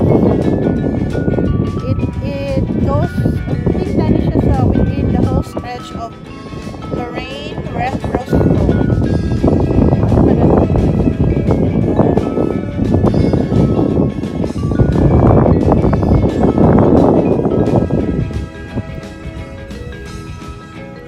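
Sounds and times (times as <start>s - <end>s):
background music with held notes: 0.0s - 21.0s
wind buffeting microphone: 0.0s - 21.0s.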